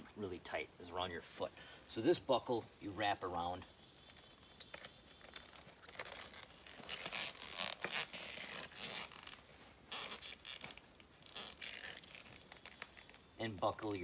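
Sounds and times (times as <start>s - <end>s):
nylon strap pulled through buckle: 4.1s - 13.8s.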